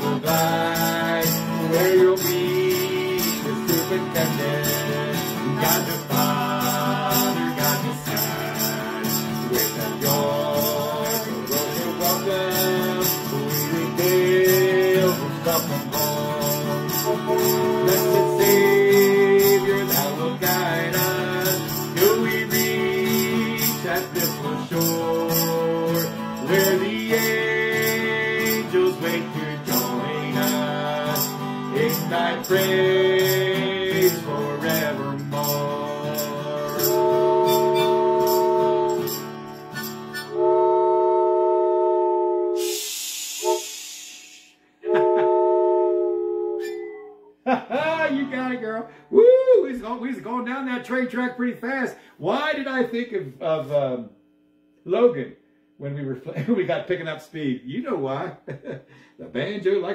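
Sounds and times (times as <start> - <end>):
acoustic guitar: 0.0 - 51.2
harmonica: 9.5 - 47.2
wooden train whistle blasts: 17.2 - 18.7, 36.8 - 47.2
burst of hiss: 42.6 - 44.6.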